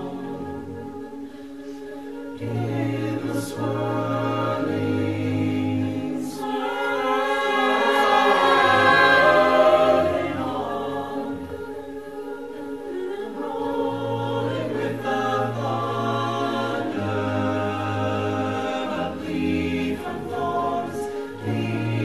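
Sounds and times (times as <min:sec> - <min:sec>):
a cappella choir singing: 0:00.0 - 0:22.0.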